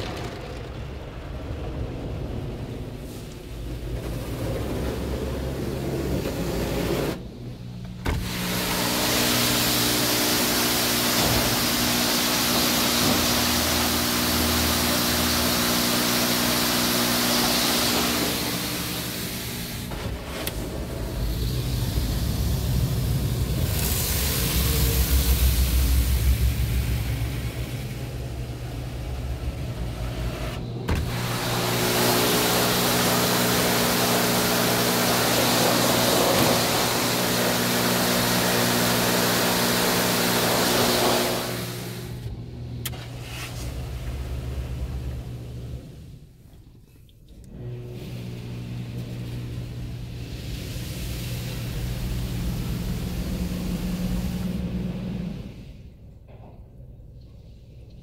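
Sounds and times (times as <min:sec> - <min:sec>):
deep loud rumble: 0:00.0 - 0:08.6, 0:17.9 - 0:32.2
machine hum: 0:00.0 - 0:46.6, 0:47.3 - 0:56.4
car wash water spray hiss: 0:01.0 - 0:46.4, 0:47.9 - 0:56.0.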